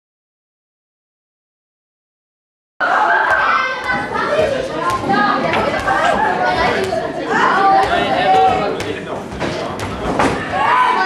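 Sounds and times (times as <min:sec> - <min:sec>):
boys chattering and calling out: 0:02.8 - 0:11.0.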